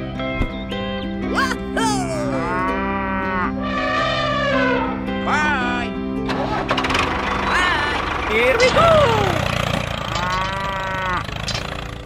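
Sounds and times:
background music: 0.0 - 11.6
cow mooing: 2.2 - 5.2, 10.1 - 11.4.

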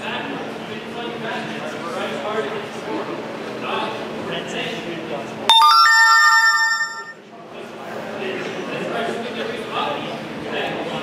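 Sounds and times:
two-note electronic chime: 5.5 - 7.1.

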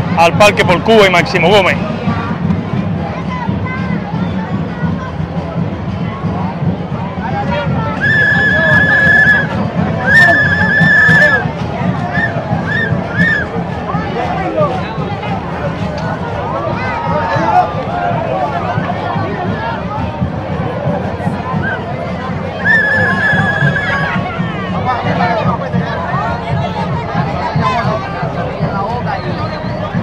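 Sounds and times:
crowd noise: 0.0 - 30.0.

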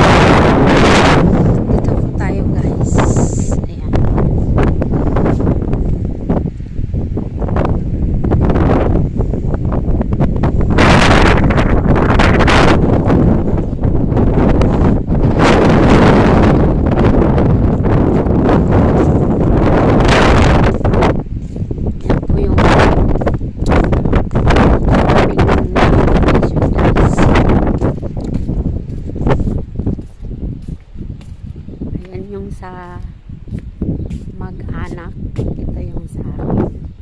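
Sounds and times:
wind buffeting microphone: 0.0 - 37.0.

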